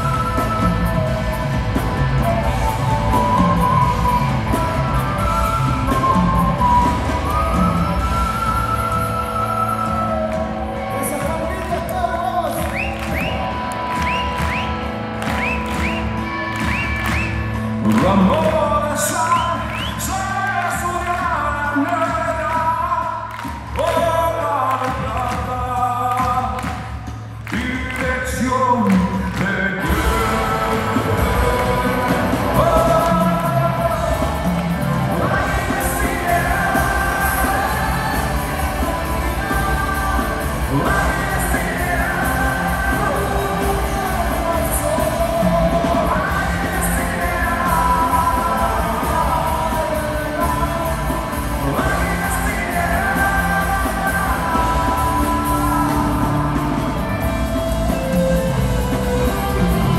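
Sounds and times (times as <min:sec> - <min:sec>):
live rock band playing: 0:00.0 - 0:24.3, 0:29.1 - 0:59.9.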